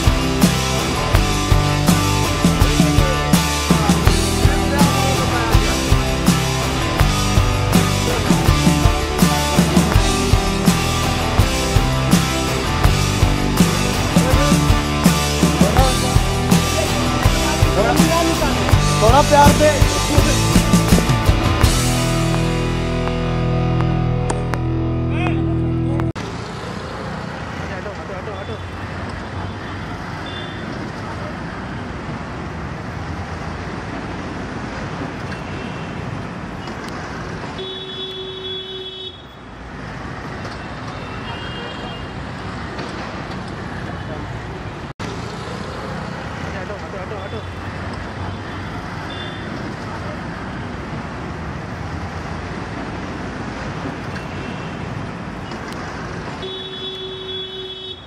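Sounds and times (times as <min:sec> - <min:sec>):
street traffic noise: 0:00.0 - 0:58.0
car horn toots: 0:37.6 - 0:39.4, 0:56.4 - 0:58.0.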